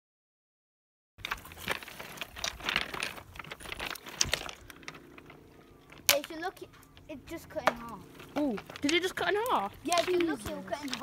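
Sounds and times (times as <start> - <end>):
pebbles crunching underfoot: 1.2 - 11.0.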